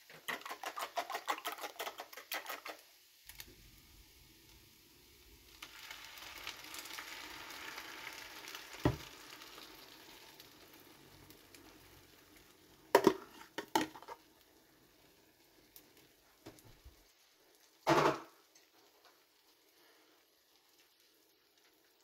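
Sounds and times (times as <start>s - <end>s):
eggs sizzling in a pan: 0.0s - 22.0s.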